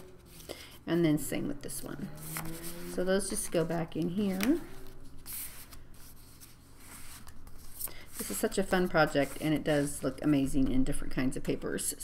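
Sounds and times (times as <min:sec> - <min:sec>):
paper rustling and sliding: 0:02.2 - 0:10.9
hissing paper rub: 0:04.5 - 0:10.4.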